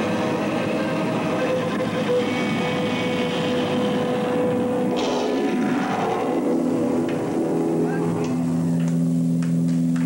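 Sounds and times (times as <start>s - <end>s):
electric guitar drone: 0.0s - 10.0s.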